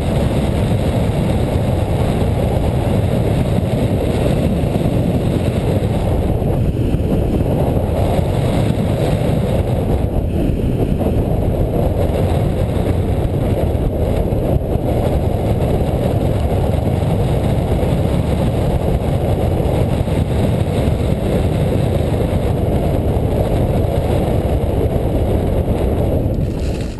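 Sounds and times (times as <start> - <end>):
wind rushing on microphone: 0.0 - 26.9.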